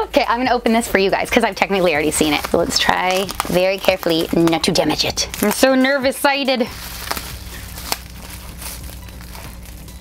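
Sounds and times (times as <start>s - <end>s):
bubble wrap crinkling: 1.4s - 10.0s.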